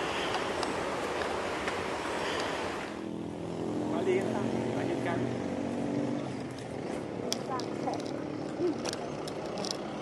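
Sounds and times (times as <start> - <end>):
engine hum: 0.0 - 10.0.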